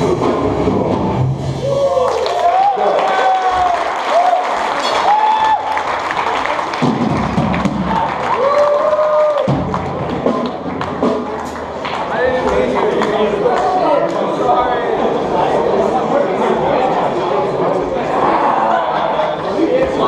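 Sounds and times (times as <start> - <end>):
crowd voices and shouts: 0.0 - 20.0.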